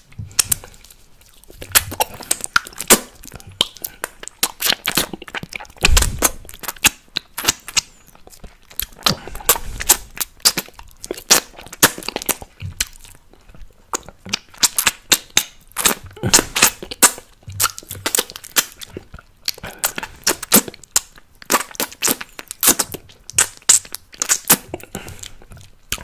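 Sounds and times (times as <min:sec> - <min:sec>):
mouth sucking and licking candy: 0:00.0 - 0:26.0.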